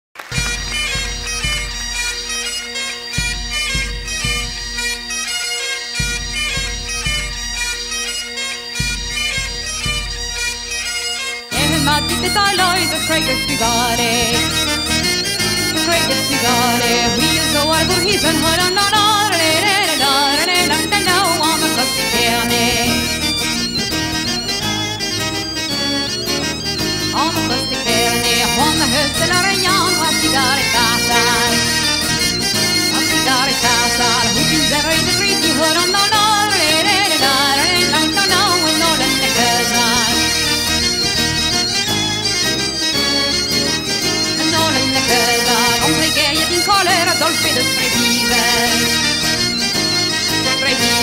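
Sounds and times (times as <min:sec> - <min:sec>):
bagpipes melody over drone: 0:00.2 - 0:51.0
pipe band music: 0:00.2 - 0:51.0
deep drum beat: 0:00.4 - 0:02.3, 0:03.2 - 0:05.1, 0:06.0 - 0:07.9, 0:08.8 - 0:10.8.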